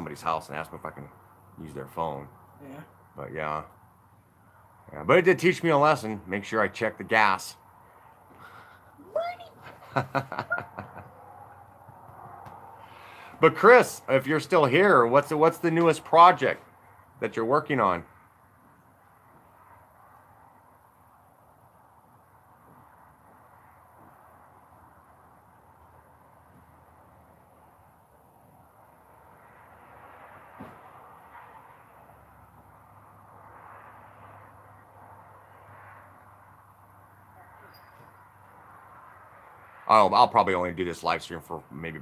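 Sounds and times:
faint outdoor background noise: 0:00.0 - 0:42.0.

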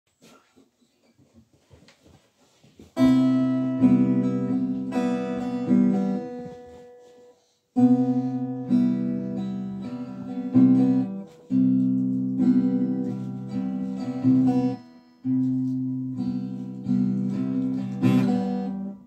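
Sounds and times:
faint rustles and knocks: 0:00.1 - 0:03.5, 0:04.8 - 0:07.5, 0:10.5 - 0:18.5
acoustic guitar chords strummed: 0:03.0 - 0:19.0.

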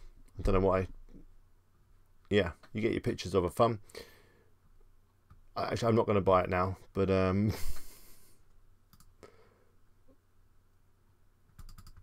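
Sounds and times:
computer mouse clicks: 0:08.9 - 0:09.2, 0:11.5 - 0:12.0.

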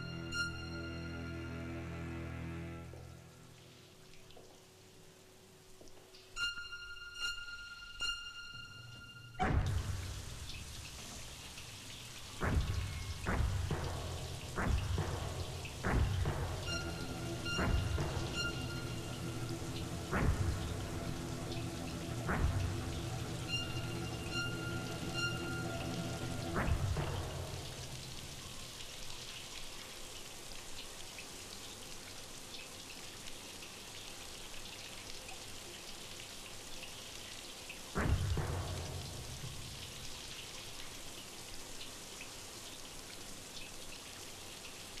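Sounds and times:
dramatic film-score music: 0:00.0 - 0:03.6, 0:06.4 - 0:29.0, 0:38.0 - 0:40.8
heavy music hits: 0:12.4 - 0:28.4.

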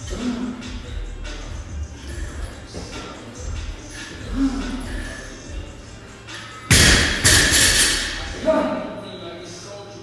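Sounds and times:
barbell crashing on floor: 0:06.7 - 0:08.2.

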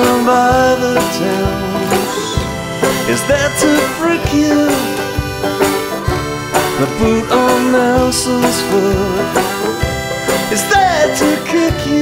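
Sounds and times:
accordion chords: 0:00.0 - 0:12.0
banjo picking: 0:00.0 - 0:12.0
person singing: 0:00.0 - 0:12.0.

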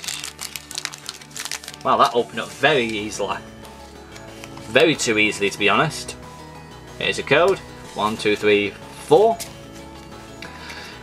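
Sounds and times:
foil wrapper crinkling and tearing: 0:00.0 - 0:03.1
background music: 0:00.0 - 0:11.0.

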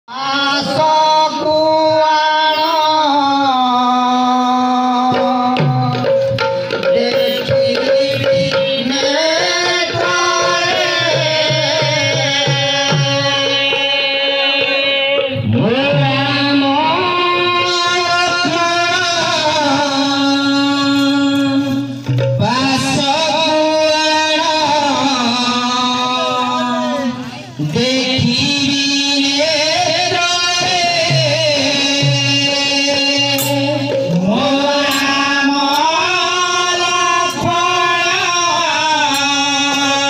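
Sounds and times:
person singing devotional melody: 0:00.0 - 0:40.0.

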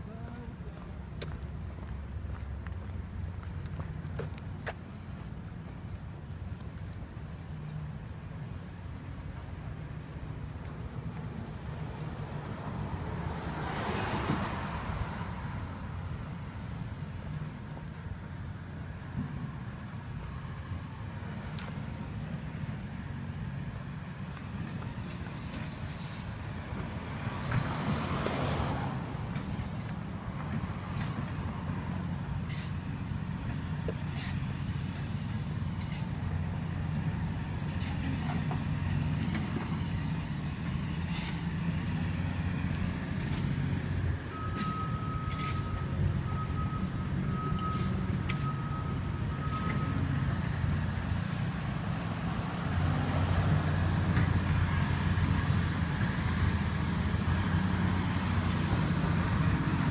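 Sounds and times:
vehicle engine rumble: 0:00.0 - 0:59.9
faint broken beeping tone: 0:44.4 - 0:50.2.

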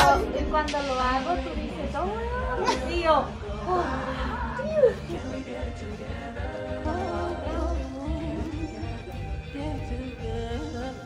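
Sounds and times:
woman laughing and vocalising: 0:02.3 - 0:05.2.

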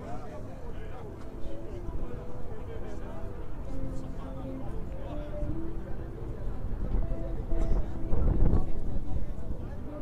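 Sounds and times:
faint music of held notes: 0:00.0 - 0:10.0
voices of passers-by: 0:00.0 - 0:10.0.

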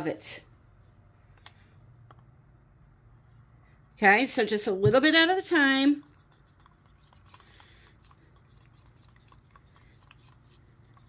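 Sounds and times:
low room hum: 0:00.0 - 0:11.0
wooden stick stirring paint: 0:05.0 - 0:11.0.

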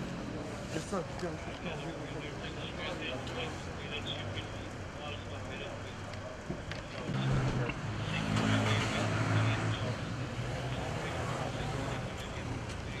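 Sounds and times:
indistinct voices: 0:00.7 - 0:13.0
car driving past: 0:07.0 - 0:12.6.

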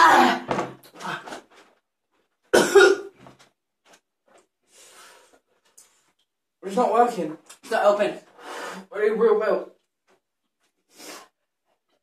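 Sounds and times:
man coughing: 0:02.5 - 0:03.1.

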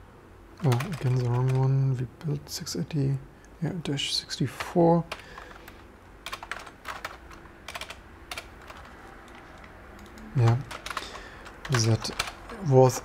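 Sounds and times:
computer keyboard typing: 0:00.6 - 0:01.8, 0:04.4 - 0:13.0.

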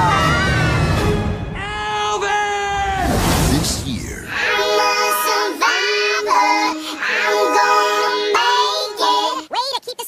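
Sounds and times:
music: 0:00.0 - 0:01.9
childlike voices singing: 0:04.2 - 0:09.5.

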